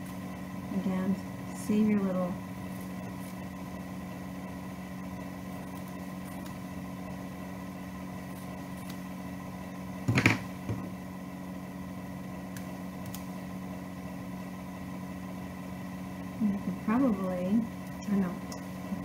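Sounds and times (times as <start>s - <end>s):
machine hum: 0.0s - 19.0s.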